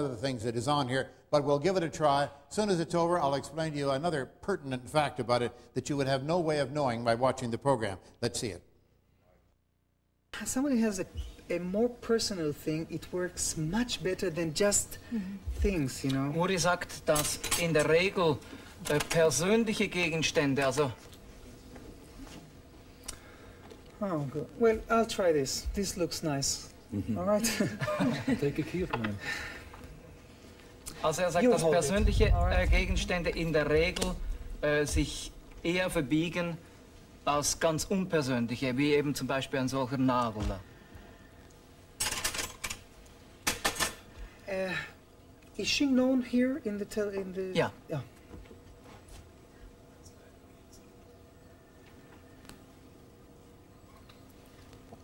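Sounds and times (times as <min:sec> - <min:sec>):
metal cutlery clinking: 0:17.1 - 0:17.8, 0:42.0 - 0:42.8
man talking: 0:24.0 - 0:29.4, 0:30.9 - 0:36.6, 0:45.6 - 0:48.2.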